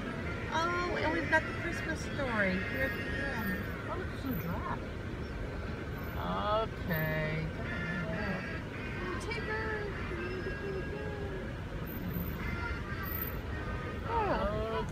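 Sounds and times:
car running noise: 0:00.0 - 0:14.9.

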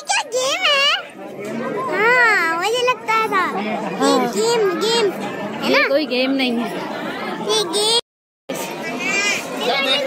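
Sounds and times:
child talking and calling out: 0:01.8 - 0:05.9, 0:07.4 - 0:08.0, 0:08.8 - 0:10.0.

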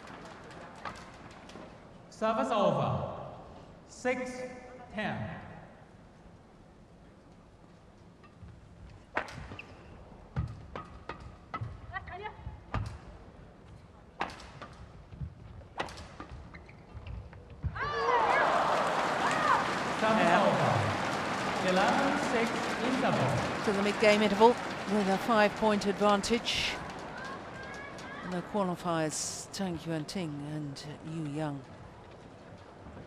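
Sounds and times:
crowd cheering and shouting: 0:17.8 - 0:25.1, 0:26.9 - 0:28.3.

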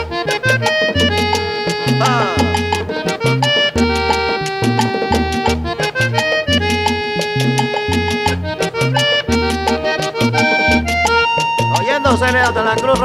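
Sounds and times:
accordion melody: 0:00.0 - 0:13.0
percussion: 0:00.0 - 0:13.0
pulsing bass line: 0:00.0 - 0:13.0.

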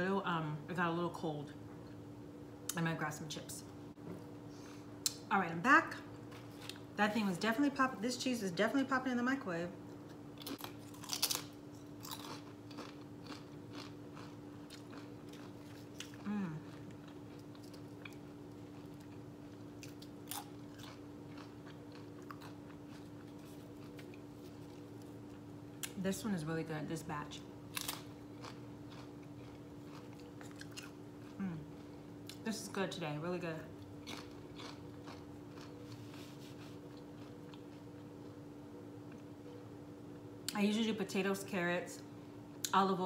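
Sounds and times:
crunchy food being chewed: 0:10.1 - 0:26.0, 0:27.7 - 0:32.4, 0:33.8 - 0:38.4.

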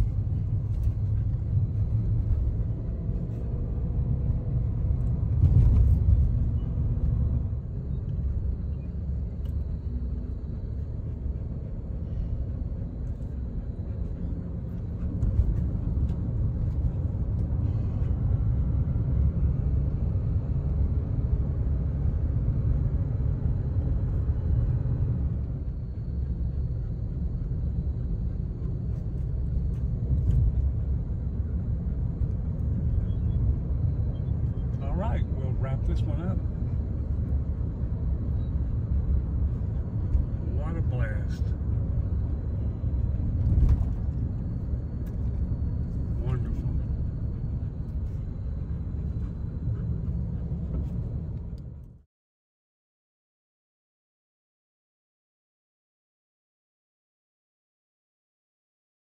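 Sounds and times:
vehicle driving on paved road: 0:00.0 - 0:52.1.

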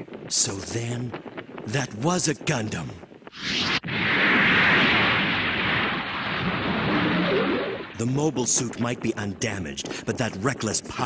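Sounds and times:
huge water splash: 0:04.2 - 0:08.0.

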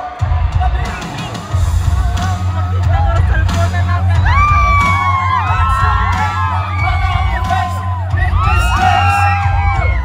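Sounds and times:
fans cheering and whooping: 0:00.0 - 0:10.0
heavy bass beat: 0:00.0 - 0:10.0
singers through sound system: 0:00.0 - 0:10.0.

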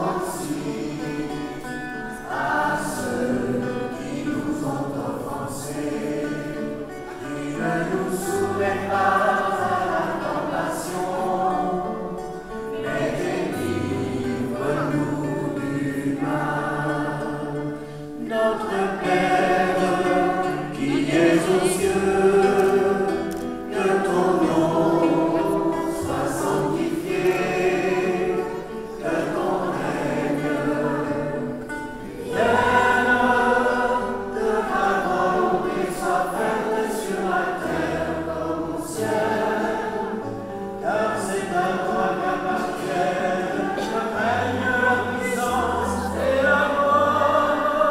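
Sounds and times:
congregation singing a hymn: 0:00.0 - 0:47.9.

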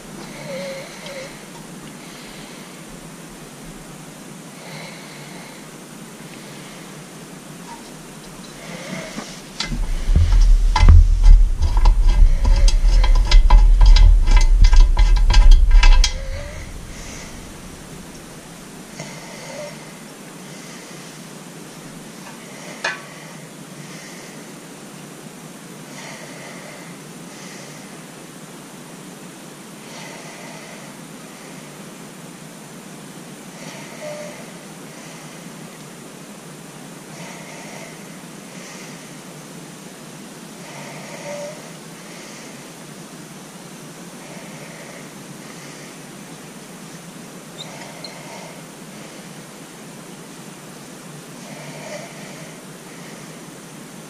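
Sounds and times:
steady low hiss: 0:00.0 - 0:54.0
heavy rumble with rapid clicking: 0:08.7 - 0:18.3
small parts clicking: 0:09.6 - 0:18.2.

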